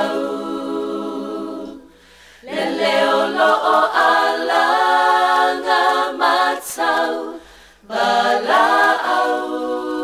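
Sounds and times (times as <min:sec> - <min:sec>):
unaccompanied choir singing: 0:00.0 - 0:10.0.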